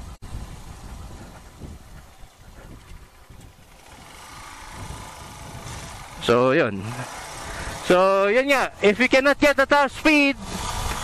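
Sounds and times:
motorcycle engine running: 0.0s - 8.9s, 10.3s - 11.0s
road and wind noise: 0.0s - 11.0s.

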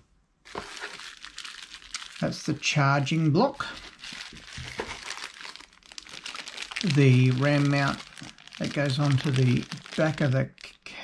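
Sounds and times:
plastic packaging crinkling: 0.5s - 11.0s.

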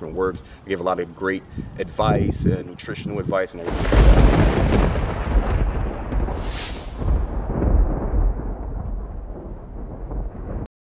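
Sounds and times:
deep rumbling boom: 3.6s - 10.7s.

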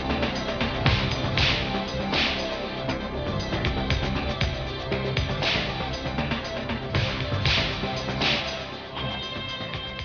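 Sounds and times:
tv theme music: 0.0s - 10.0s.

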